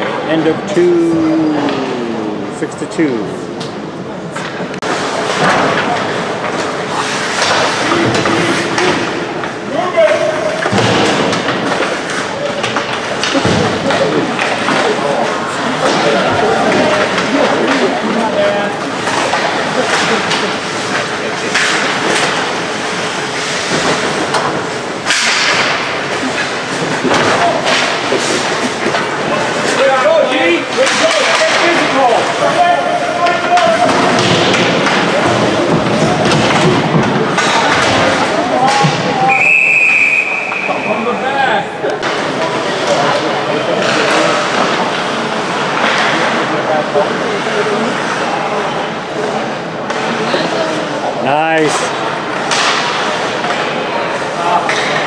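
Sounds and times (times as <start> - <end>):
hockey sticks and puck knocking: 3.6 - 17.8, 18.5 - 39.1, 41.9 - 46.7, 51.6 - 55.0
referee's whistle blast: 39.3 - 41.0.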